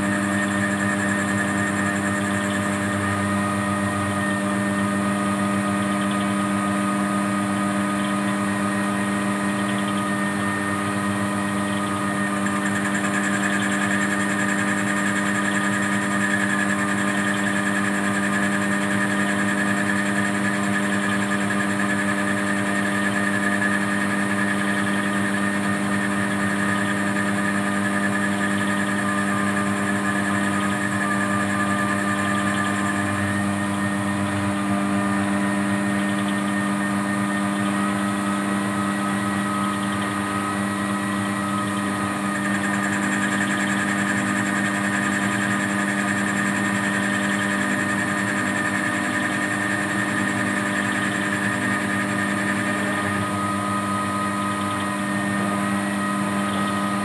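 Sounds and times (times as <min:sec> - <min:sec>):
high machine whine: 0:00.0 - 0:57.0
lathe motor hum: 0:00.0 - 0:57.0.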